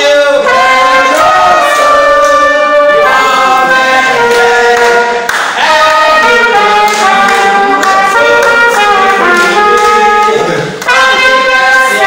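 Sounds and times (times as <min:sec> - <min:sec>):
group singing: 0:00.0 - 0:12.0
people clapping along: 0:00.0 - 0:12.0
trumpet melody: 0:00.0 - 0:12.0.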